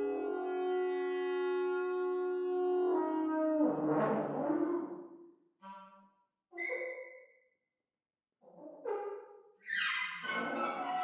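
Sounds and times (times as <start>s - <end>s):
clarinet and saxhorn notes: 0.0s - 3.7s, 5.6s - 6.2s.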